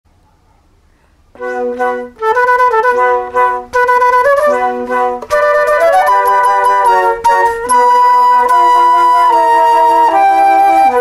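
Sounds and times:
flute ensemble chord: 1.4s - 11.0s.

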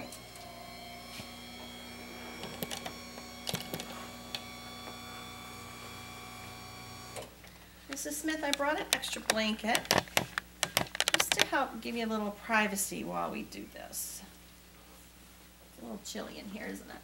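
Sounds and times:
electric bed motor running: 0.0s - 7.4s.

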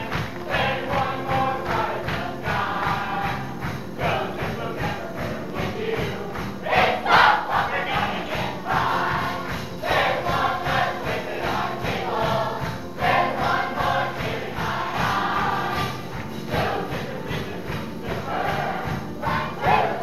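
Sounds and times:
cast singing in chorus: 0.0s - 20.0s
lively up-tempo accompaniment: 0.0s - 20.0s.

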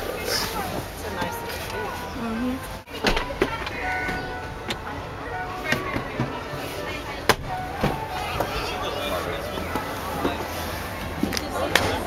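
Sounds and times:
background music: 0.0s - 12.0s
background talking: 0.0s - 12.0s.

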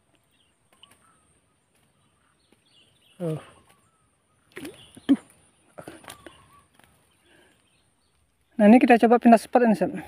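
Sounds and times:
soft bird chirps: 0.0s - 9.3s.

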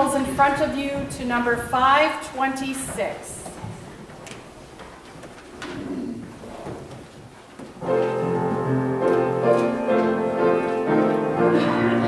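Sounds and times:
congregation rustling standing up: 0.0s - 12.0s
keyboard playing hymn chords: 7.8s - 12.0s.

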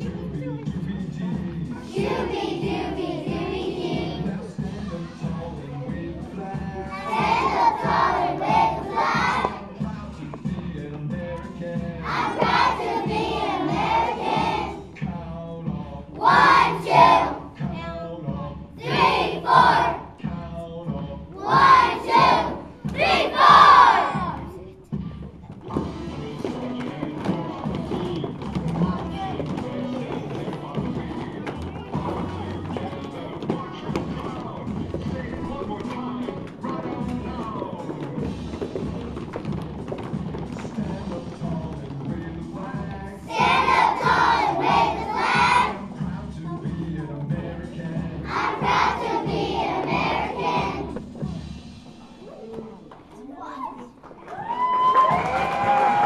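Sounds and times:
children's choir singing: 0.0s - 24.8s, 25.5s - 39.2s, 40.0s - 52.2s
recorded music: 0.0s - 53.1s
children chanting in unison: 1.8s - 4.6s, 6.9s - 9.7s, 12.0s - 14.9s, 16.2s - 17.5s, 18.8s - 20.1s, 21.4s - 24.6s, 43.2s - 45.9s, 48.2s - 50.9s.

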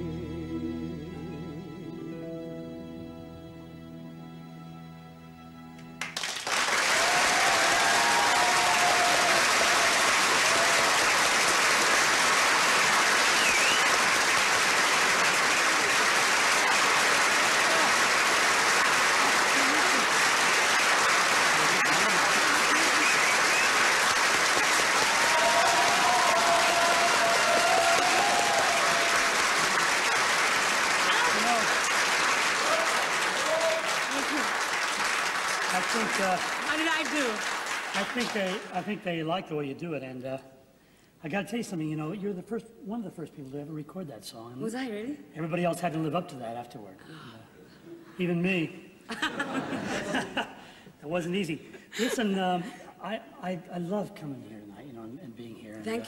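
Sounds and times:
audience applauding: 6.0s - 39.2s.

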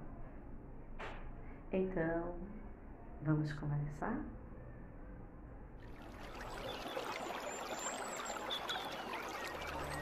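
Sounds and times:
water trickling from bamboo spout: 5.8s - 10.0s.

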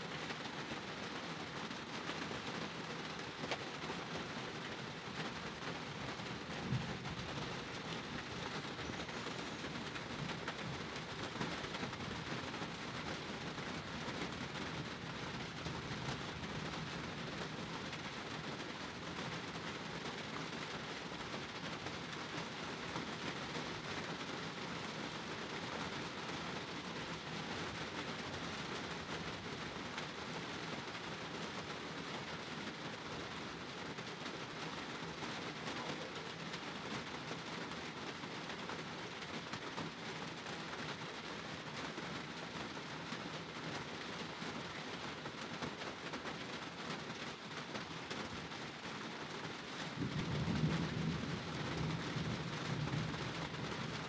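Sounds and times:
steady rain: 0.0s - 54.0s
thunder rumbling: 50.0s - 53.6s.

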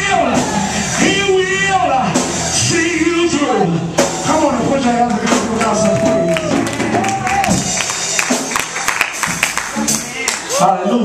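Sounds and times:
band accompaniment: 0.0s - 11.0s.

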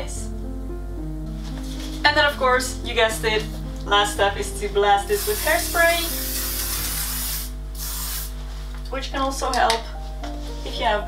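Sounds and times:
aerosol spray hissing: 5.1s - 8.4s.

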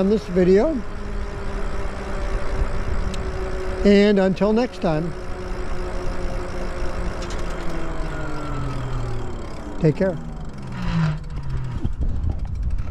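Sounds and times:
electric motor whine: 0.0s - 12.9s
wind and tyres rumbling: 0.0s - 12.9s.

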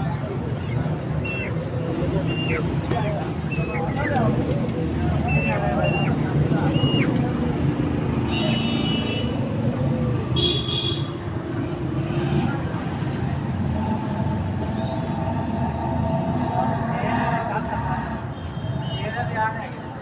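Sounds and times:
street traffic: 0.0s - 20.0s
vehicle horn toots: 8.3s - 9.4s, 10.4s - 11.1s.

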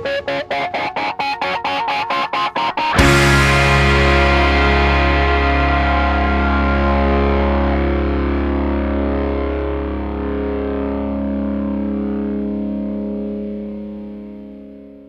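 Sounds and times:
distorted electric guitar chord: 0.0s - 15.0s
steady bass note: 3.0s - 15.0s.

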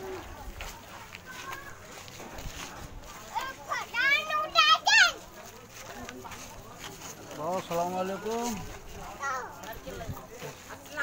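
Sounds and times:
low street background noise: 0.0s - 11.0s.

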